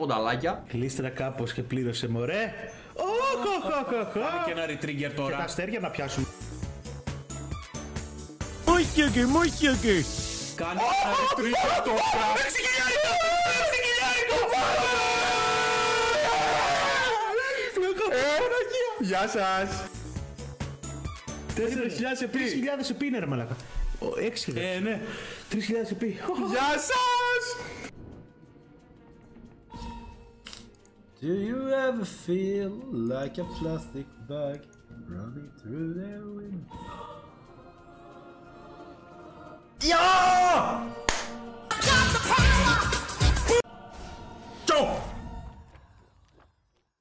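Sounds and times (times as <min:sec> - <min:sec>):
music: 0:00.0 - 0:47.0
man shouting and laughing: 0:03.0 - 0:04.6, 0:10.7 - 0:18.5, 0:41.8 - 0:43.6.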